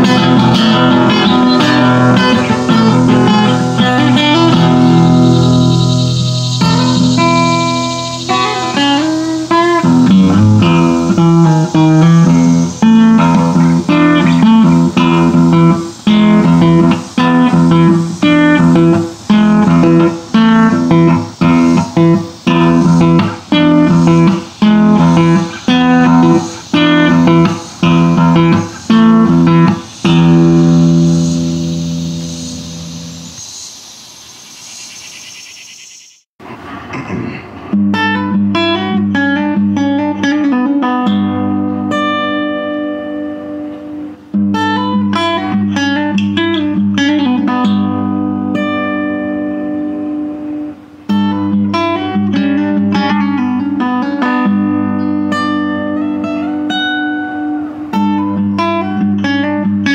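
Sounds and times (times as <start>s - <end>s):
acoustic guitar chords: 0.0s - 33.4s, 36.4s - 59.9s.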